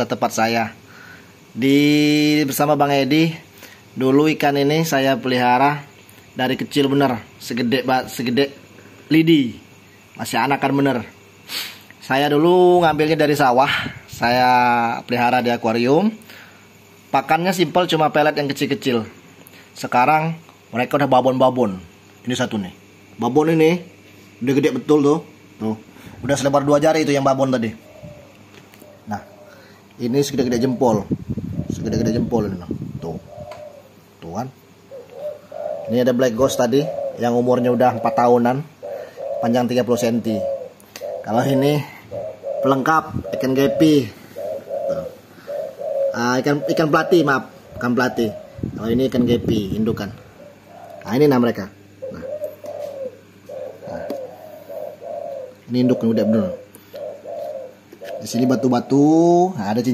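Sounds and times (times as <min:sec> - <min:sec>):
low cooing calls: 0:00.0 - 0:19.7, 0:21.8 - 0:59.9
steady background hiss: 0:00.0 - 0:59.9.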